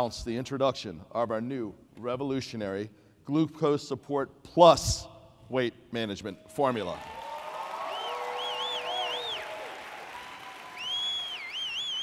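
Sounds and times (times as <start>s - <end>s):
audience applause and cheering: 6.8s - 12.0s.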